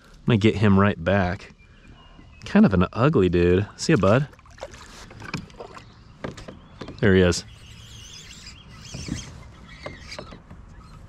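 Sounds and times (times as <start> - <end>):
faint bird chirping: 0.8 - 3.8, 5.0 - 11.0.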